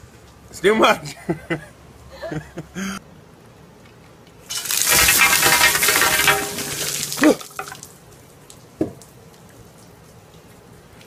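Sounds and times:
ice water splashing: 0:04.5 - 0:08.0.

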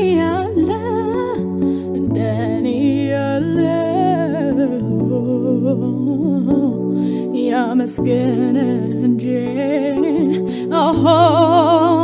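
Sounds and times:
person singing with vibrato: 0:00.0 - 0:12.0
sustained backing chords: 0:00.0 - 0:12.0.

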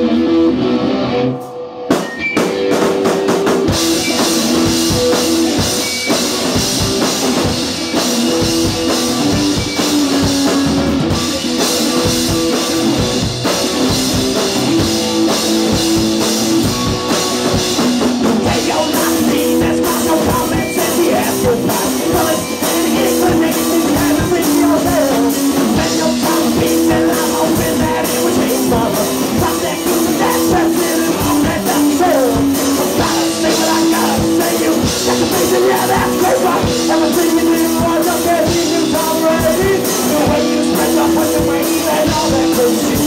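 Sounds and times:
drum kit: 0:00.0 - 0:43.0
electric guitar: 0:00.0 - 0:43.0.

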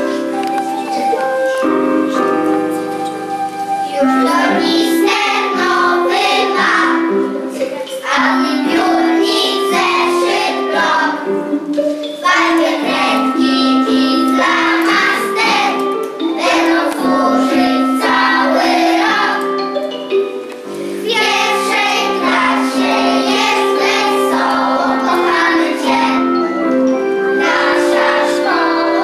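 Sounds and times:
instrumental accompaniment: 0:00.0 - 0:29.0
children singing: 0:02.2 - 0:19.8, 0:20.7 - 0:29.0.

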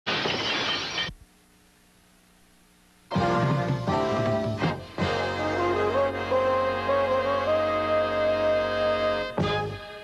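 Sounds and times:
loud static hiss: 0:00.1 - 0:05.4
faint low hum: 0:00.3 - 0:03.1.

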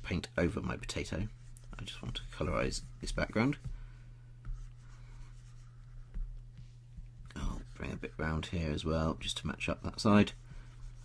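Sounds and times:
stylus scratching on screen: 0:04.5 - 0:08.4, 0:09.7 - 0:11.0.

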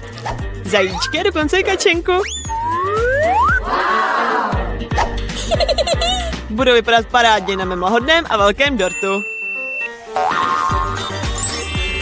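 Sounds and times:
playful background music: 0:00.0 - 0:12.0
high rising glissando: 0:02.2 - 0:03.7
cartoon boing sound effects: 0:02.5 - 0:03.6, 0:10.1 - 0:11.4.

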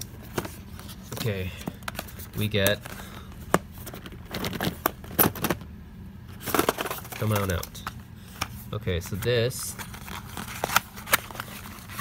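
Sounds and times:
cardboard packaging rustling: 0:06.3 - 0:12.0
packaging clicks: 0:06.4 - 0:08.5.

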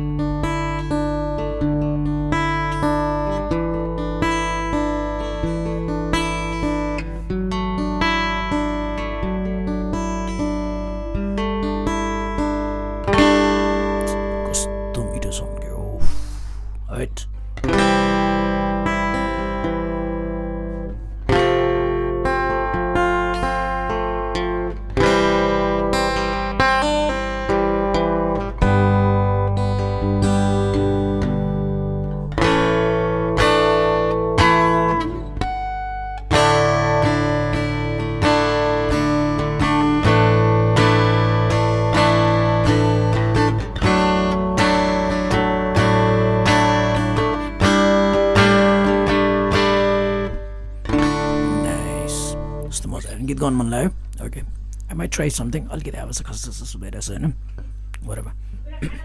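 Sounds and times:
acoustic guitar chords strummed: 0:00.0 - 0:59.0.

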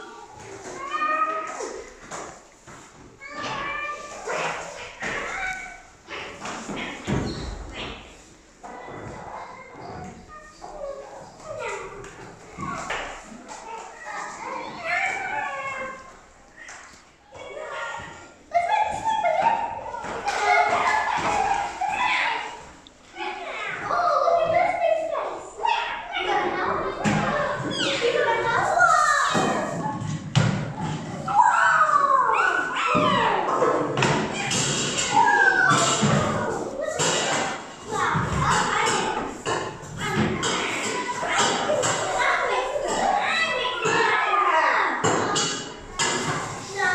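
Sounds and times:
children making animal calls: 0:03.1 - 0:30.1, 0:30.7 - 0:46.9.

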